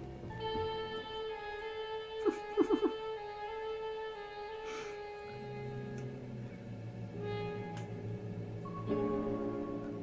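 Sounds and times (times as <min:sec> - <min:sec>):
film score sustained notes: 0:00.0 - 0:10.0.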